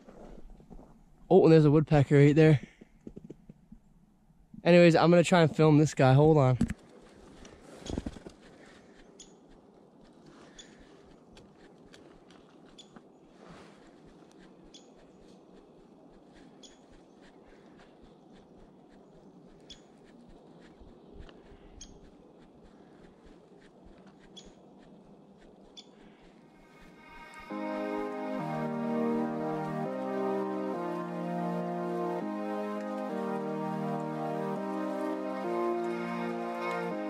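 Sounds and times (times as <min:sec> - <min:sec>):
forest hiss: 0:25.8 - 0:30.0
soft keyboard music: 0:26.6 - 0:37.0.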